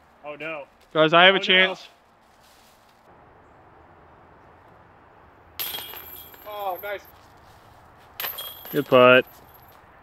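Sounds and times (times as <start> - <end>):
disc hitting metal chains: 5.6 - 7.0, 8.2 - 9.7.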